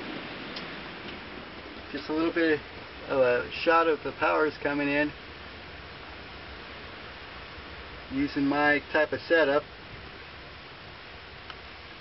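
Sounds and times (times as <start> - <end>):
steady hiss: 0.0 - 12.0
faint click: 11.4 - 11.6.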